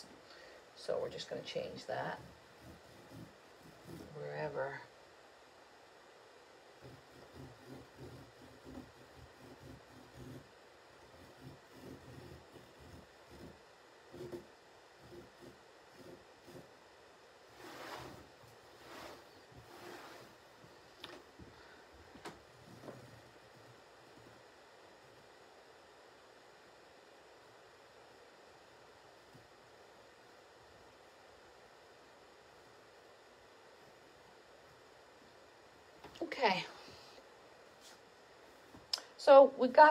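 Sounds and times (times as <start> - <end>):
faint room hiss: 0.0 - 39.9
faint rustling: 17.5 - 24.4.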